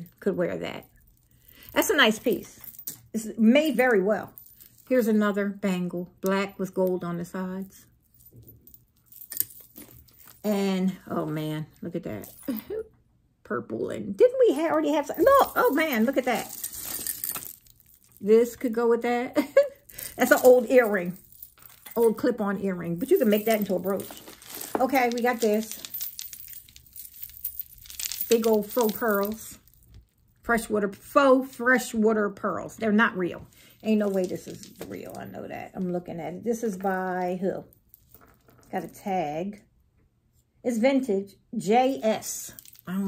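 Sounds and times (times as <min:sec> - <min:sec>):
jewelry handling noise: 0:00.0 - 0:12.9, 0:14.2 - 0:30.7, 0:32.7 - 0:39.2, 0:41.8 - 0:43.0.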